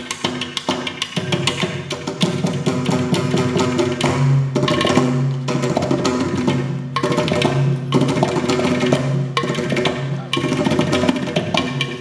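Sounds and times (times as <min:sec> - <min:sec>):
mridangam drumming: 0:00.0 - 0:12.0.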